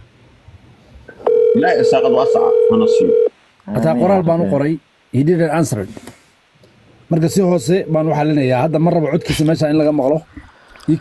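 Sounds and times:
person talking: 0:01.6 - 0:06.0.

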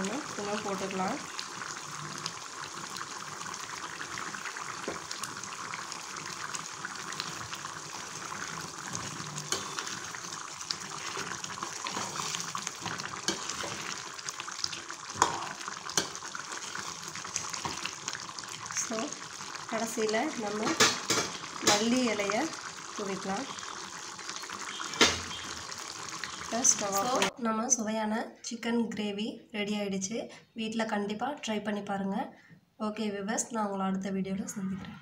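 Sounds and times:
gravy simmering and sizzling: 0:00.0 - 0:27.4
metal spoon stirring: 0:08.9 - 0:10.2, 0:10.8 - 0:14.1.

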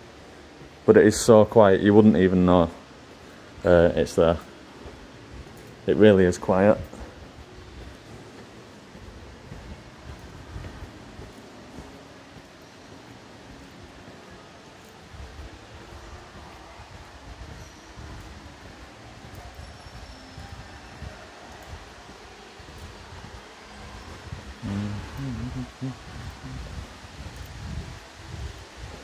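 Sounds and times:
faint low rumble: 0:02.9 - 0:29.0.

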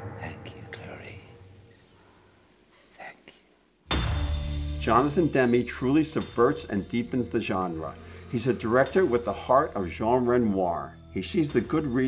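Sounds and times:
person whispering: 0:00.0 - 0:01.4, 0:02.8 - 0:03.5
loud music hit: 0:03.9 - 0:07.4
low sustained music tone: 0:04.0 - 0:12.0.

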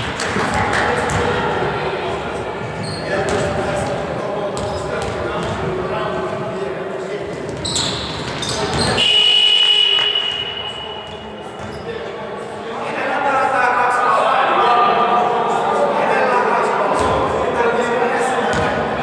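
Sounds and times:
players' voices: 0:00.0 - 0:19.0
referee's whistle: 0:08.8 - 0:11.4.

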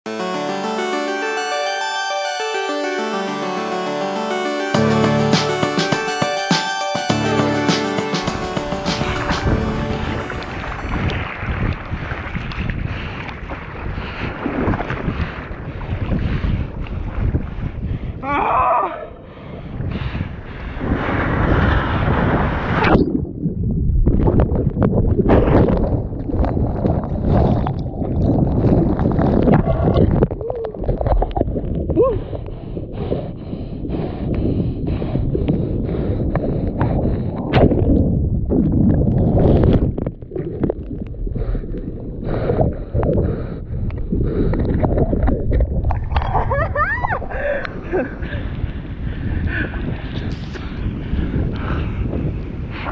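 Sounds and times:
surf and splashing water: 0:04.8 - 0:17.9, 0:20.3 - 0:23.2
muffled underwater rumbling: 0:19.4 - 0:52.9.

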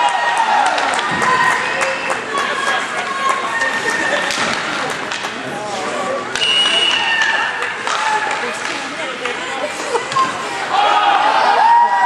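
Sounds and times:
sticks and puck clacking: 0:00.7 - 0:09.4.

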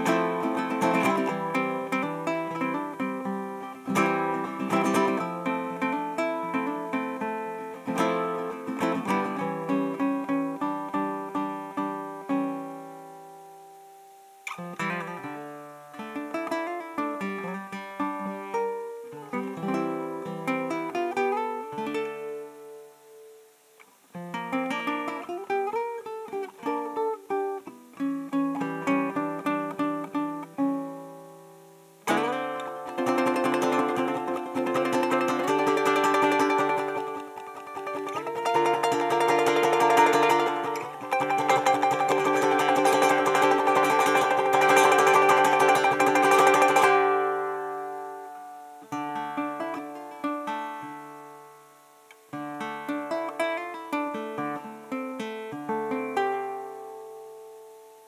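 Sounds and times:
ukulele playing: 0:00.0 - 0:23.5, 0:24.2 - 0:58.0.

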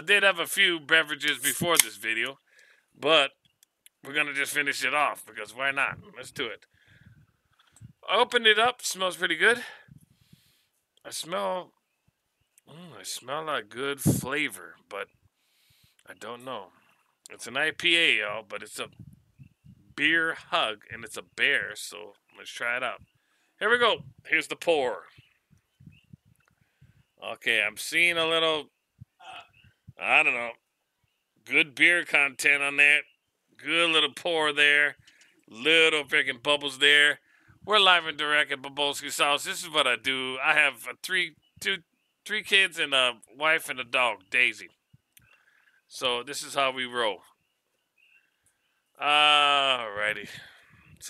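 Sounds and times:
man speaking: 0:00.0 - 0:02.4, 0:03.0 - 0:03.3, 0:04.0 - 0:06.6, 0:08.0 - 0:09.9, 0:11.1 - 0:11.7, 0:12.7 - 0:15.1, 0:16.1 - 0:16.7, 0:17.3 - 0:19.0, 0:19.9 - 0:23.0, 0:23.6 - 0:25.2, 0:27.2 - 0:29.4, 0:30.0 - 0:30.6, 0:31.5 - 0:33.0, 0:33.6 - 0:44.7, 0:45.9 - 0:47.2, 0:49.0 - 0:50.6.

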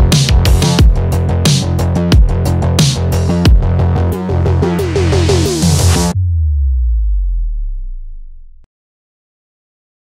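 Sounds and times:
deep synthesizer bass note: 0:00.0 - 0:08.7.

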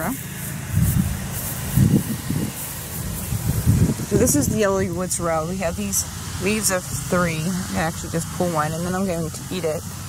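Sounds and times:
footsteps on grass: 0:00.1 - 0:04.4.

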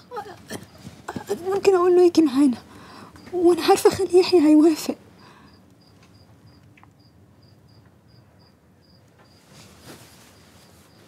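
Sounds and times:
cricket chirping: 0:00.0 - 0:09.5
soft noise: 0:09.1 - 0:11.0.

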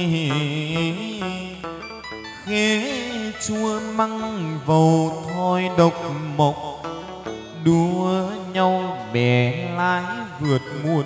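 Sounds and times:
voice singing sliding long notes: 0:00.0 - 0:11.0.

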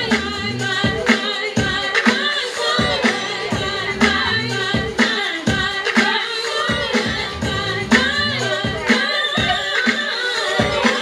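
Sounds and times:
dance music over loudspeakers: 0:00.0 - 0:11.0.

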